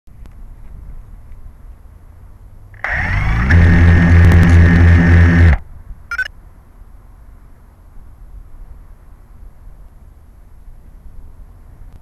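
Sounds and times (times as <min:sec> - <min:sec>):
drone motors whining: 0:02.8 - 0:06.3.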